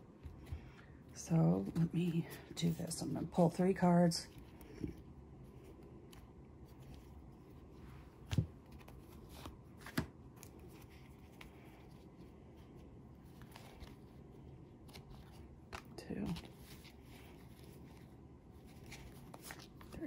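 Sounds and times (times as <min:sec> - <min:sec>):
cards rustling: 0:04.3 - 0:20.0.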